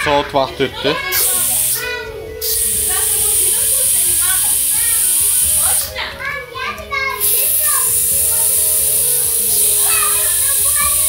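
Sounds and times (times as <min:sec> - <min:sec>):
steam hissing from pressure cooker: 0:01.1 - 0:01.8, 0:02.4 - 0:05.9, 0:07.2 - 0:11.0.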